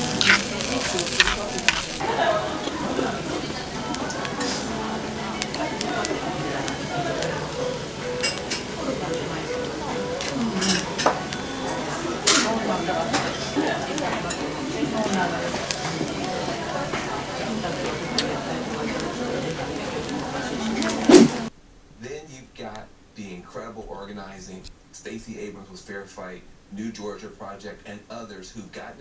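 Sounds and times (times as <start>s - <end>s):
metal spoon scraping stone bowl: 0.0s - 2.0s
rice sizzling in hot stone bowl: 0.0s - 21.5s
background voices: 0.0s - 29.0s
metal spoon clicking on stone: 1.1s - 1.9s.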